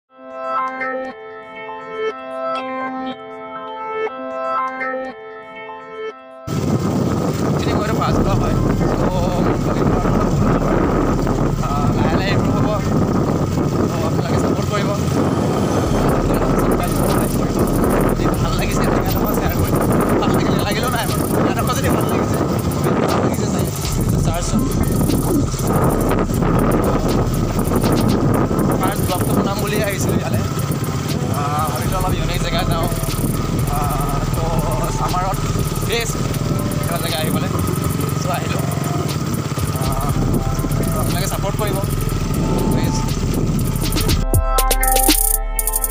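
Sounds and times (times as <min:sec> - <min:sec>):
wind buffeting microphone: 0:06.5 - 0:44.3
motorcycle engine running: 0:06.5 - 0:45.9.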